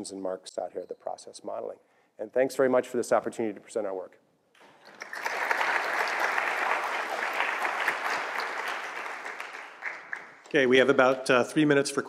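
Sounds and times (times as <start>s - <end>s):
audience applauding: 4.6s - 10.9s.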